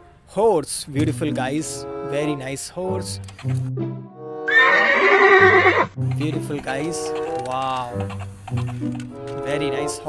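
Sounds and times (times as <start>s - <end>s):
background music: 0.0s - 10.0s
horse neighing: 4.5s - 6.0s.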